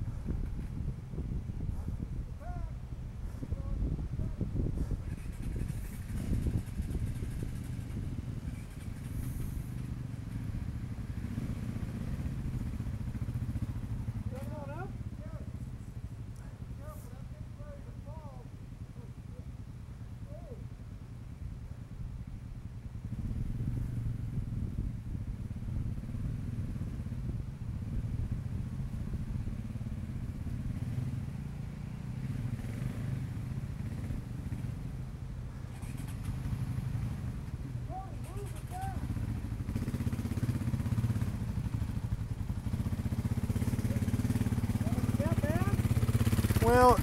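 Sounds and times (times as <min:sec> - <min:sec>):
dirt bike engines idling: 0:00.0 - 0:47.0.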